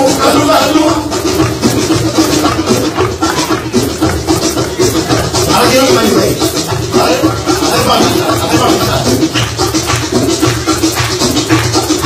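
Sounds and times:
hand drums: 0.0 - 12.0.

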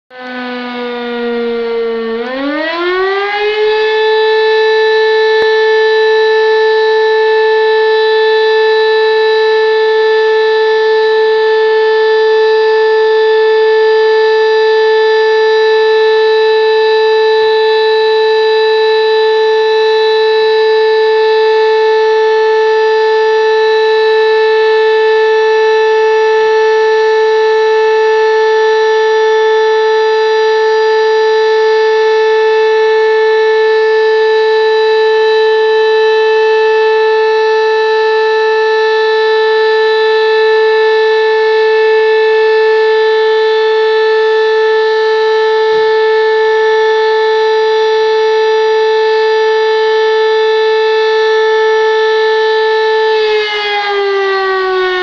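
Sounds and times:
fire station alarm siren: 0.1 - 55.0.

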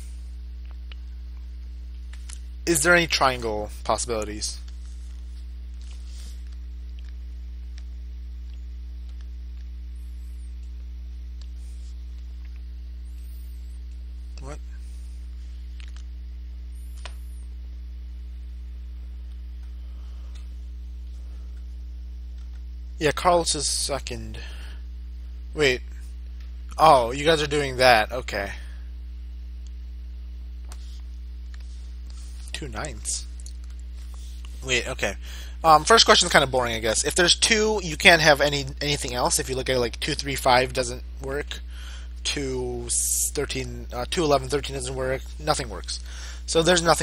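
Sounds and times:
electrical mains hum: 0.0 - 47.0.

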